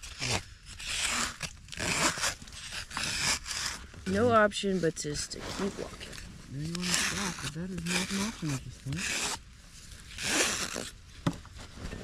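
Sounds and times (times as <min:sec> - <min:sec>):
trowel scraping shoe insole: 0:00.0 - 0:04.2, 0:05.3 - 0:11.0.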